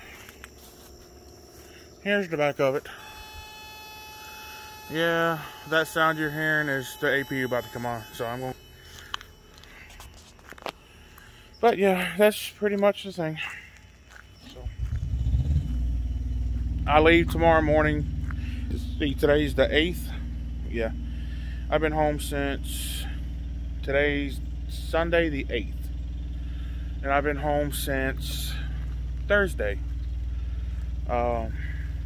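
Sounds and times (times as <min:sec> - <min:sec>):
faint steady hum: 0:00.0 - 0:12.6, 0:13.7 - 0:32.0.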